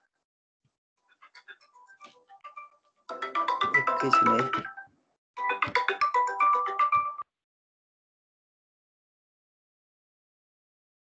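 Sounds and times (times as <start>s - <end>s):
phone ringtone: 1.3s - 7.3s.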